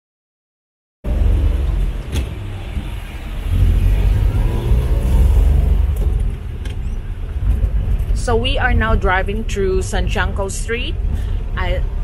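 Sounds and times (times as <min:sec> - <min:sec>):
vehicle engine and road rumble: 0:01.0 - 0:12.0.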